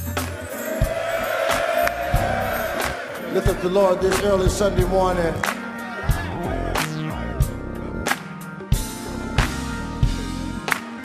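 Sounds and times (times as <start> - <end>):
drum and cymbal beat: 0.0 - 11.0
gospel band music: 0.0 - 11.0.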